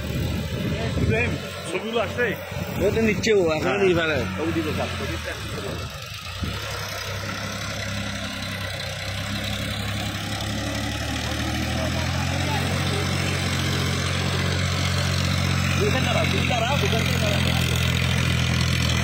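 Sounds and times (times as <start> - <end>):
tractor diesel engine running: 0.0 - 19.0.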